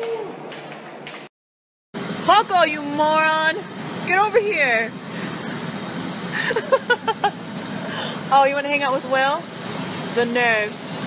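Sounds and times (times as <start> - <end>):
road and engine noise in car: 2.0 - 11.0
person laughing: 6.3 - 8.1.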